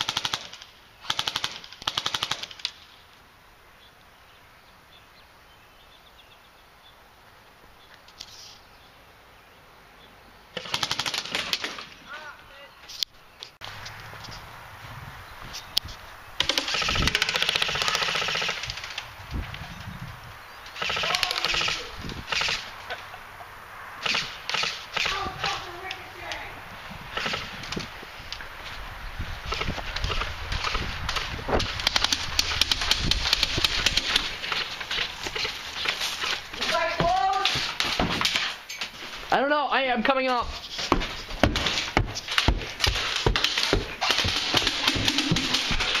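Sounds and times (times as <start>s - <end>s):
airsoft guns rapid firing: 0.0s - 2.6s, 10.6s - 11.8s, 16.4s - 19.0s, 20.8s - 22.7s, 24.0s - 25.7s, 27.1s - 27.6s, 29.5s - 35.5s, 41.5s - 46.0s.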